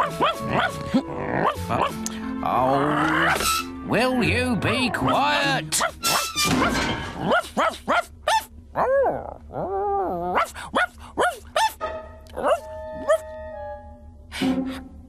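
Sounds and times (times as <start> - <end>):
cartoon dog yelping barks: 0.0 - 0.8, 4.8 - 9.2, 10.2 - 13.2
music with held notes: 11.8 - 15.0.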